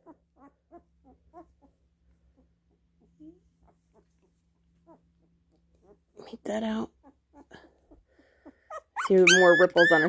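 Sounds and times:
puppy whimpering: 0.0s - 6.1s, 6.9s - 10.0s.

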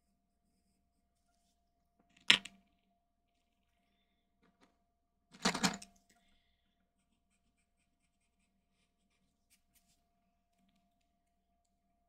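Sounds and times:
pencil scratching on paper: 6.9s - 10.0s.

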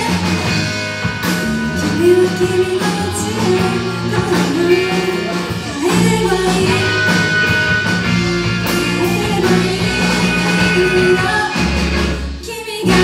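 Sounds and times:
woman singing lead vocal: 0.0s - 0.7s, 1.8s - 7.7s, 8.7s - 13.0s
live rock band playing: 0.0s - 13.0s.

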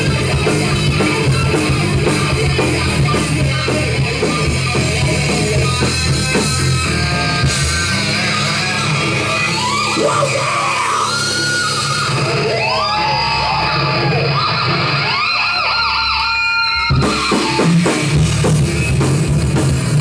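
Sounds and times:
electric guitar lead: 0.0s - 20.0s
heavy metal band playing: 0.0s - 20.0s.

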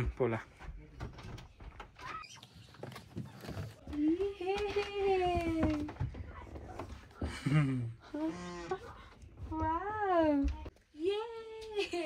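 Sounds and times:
door squeaking: 1.2s - 3.8s.

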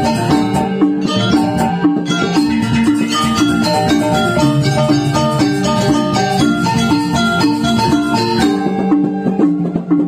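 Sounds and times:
metallophones struck with mallets: 0.0s - 10.0s.

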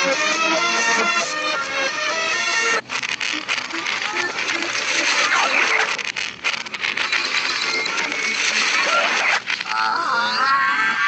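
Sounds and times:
cartoon music: 0.0s - 2.8s.

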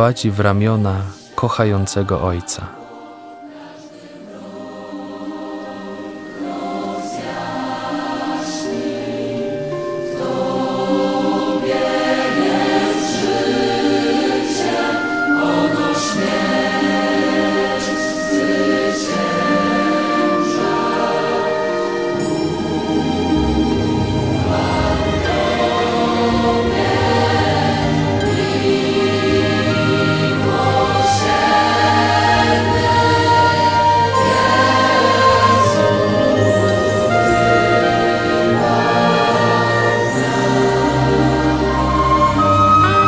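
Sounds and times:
choir singing held notes: 0.0s - 43.0s.

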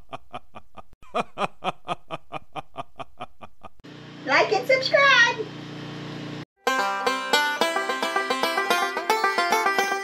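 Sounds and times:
person laughing: 0.0s - 3.8s.

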